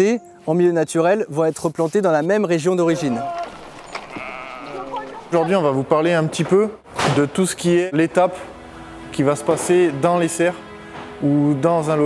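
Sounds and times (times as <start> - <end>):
sheep bleating: 2.9 - 5.4.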